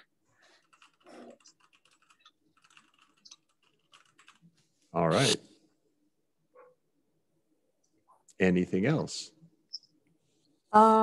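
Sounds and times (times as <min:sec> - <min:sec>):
keyboard typing: 0:00.6 - 0:04.5.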